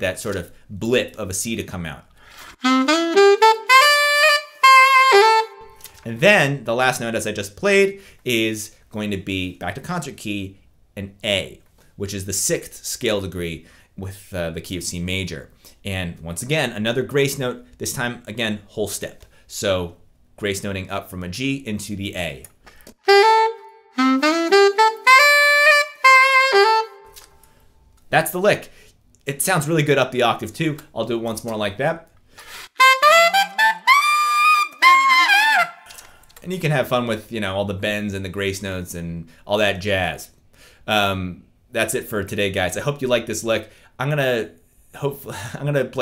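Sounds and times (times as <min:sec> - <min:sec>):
alto saxophone playing: 0:02.6 - 0:05.8, 0:23.0 - 0:27.2, 0:32.6 - 0:36.0.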